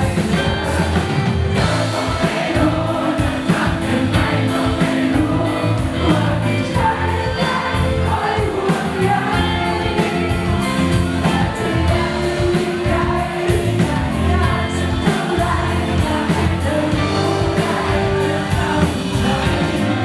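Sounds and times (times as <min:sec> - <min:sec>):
live rock band playing: 0:00.0 - 0:20.0
woman singing: 0:00.0 - 0:20.0.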